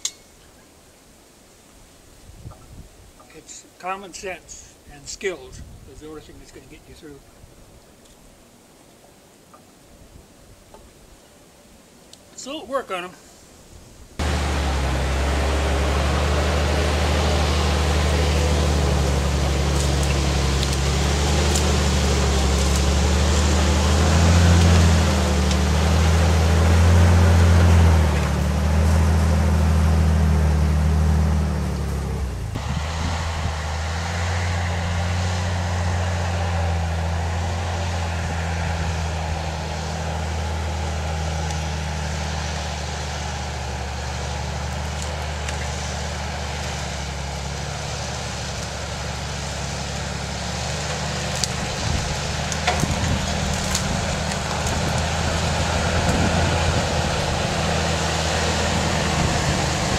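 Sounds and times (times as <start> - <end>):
steady engine drone: 14.2 - 59.9.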